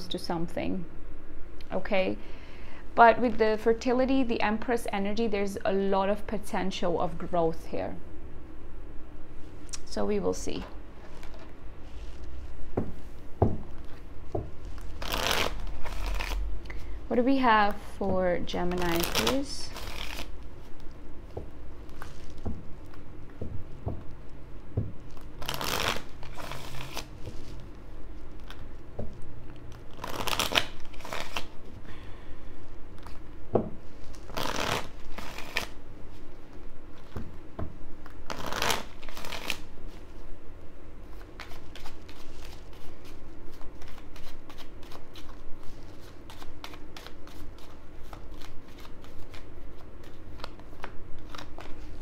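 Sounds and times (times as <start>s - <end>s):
cards shuffling: 14.7s - 16.5s, 18.7s - 20.9s, 21.8s - 23.0s, 25.1s - 27.7s, 29.8s - 31.6s, 34.0s - 35.8s, 38.0s - 39.7s, 41.2s - 52.0s
cards riffling: 34.0s - 35.8s.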